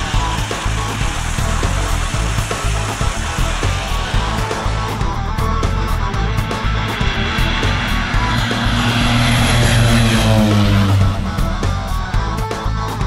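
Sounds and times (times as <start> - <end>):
propeller airplane flying past: 0.0 - 12.6
background music with steady beat: 0.0 - 13.0.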